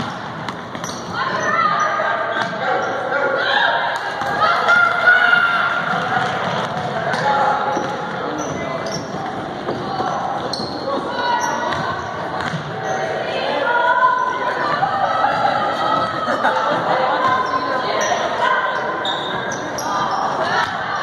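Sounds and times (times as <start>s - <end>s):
sneakers squeaking: 0.0s - 3.1s, 4.0s - 13.3s, 14.0s - 21.0s
voices shouting: 1.1s - 6.6s.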